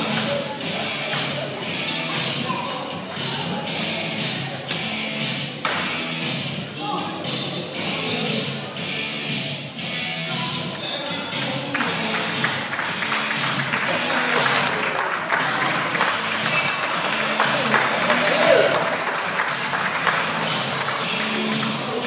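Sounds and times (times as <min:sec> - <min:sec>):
backing music: 0:00.0 - 0:22.0
voices: 0:00.0 - 0:22.0
audience applause: 0:11.7 - 0:21.9.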